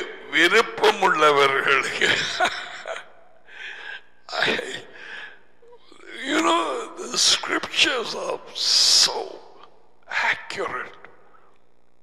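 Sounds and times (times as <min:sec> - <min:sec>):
man talking: 0:00.0 - 0:03.0, 0:04.3 - 0:05.0, 0:05.8 - 0:11.1.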